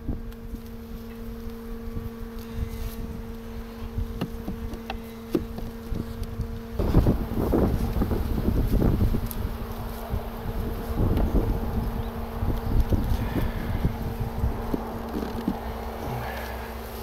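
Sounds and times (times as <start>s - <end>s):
honeybees buzzing: 0.0s - 17.0s.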